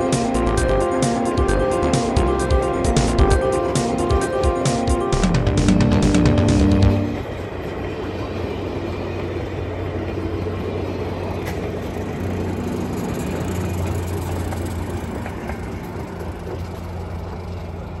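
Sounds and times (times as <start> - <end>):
diesel locomotive engine drone: 0.0 - 18.0
train rolling over rails: 0.0 - 18.0.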